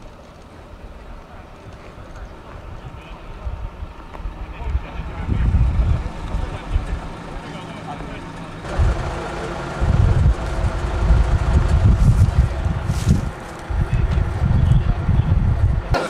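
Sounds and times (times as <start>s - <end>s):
wind buffeting microphone: 0.0s - 7.5s, 8.3s - 16.0s
engine hum: 0.0s - 16.0s
people talking: 0.4s - 16.0s.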